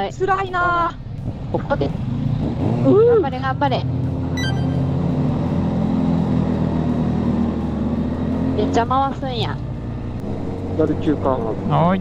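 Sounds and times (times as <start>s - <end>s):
motorcycle engine running: 0.0s - 12.0s
road and wind noise: 0.0s - 12.0s.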